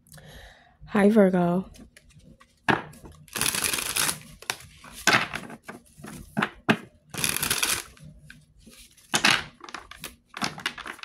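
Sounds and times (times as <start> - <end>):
cards being shuffled: 1.8 - 6.3, 7.2 - 8.0, 8.6 - 11.0.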